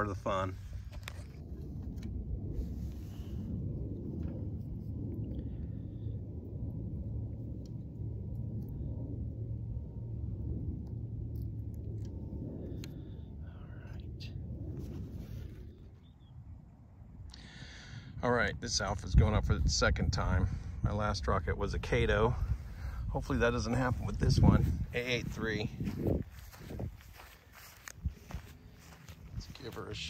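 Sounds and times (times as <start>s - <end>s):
wind rumbling on microphone: 0.0s - 30.0s.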